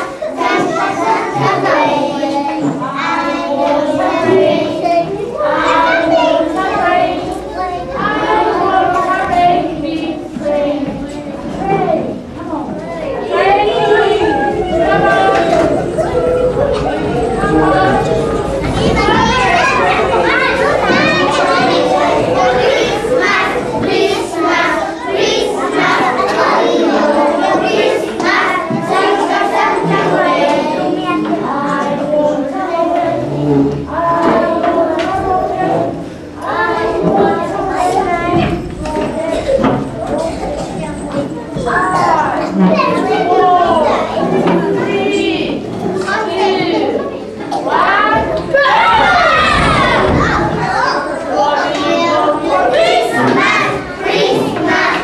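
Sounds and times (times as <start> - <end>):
children chattering: 0.0 - 55.0.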